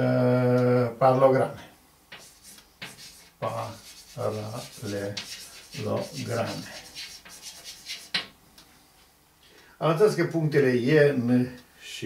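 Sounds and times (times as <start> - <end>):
chalk scratching on blackboard: 2.1 - 8.3.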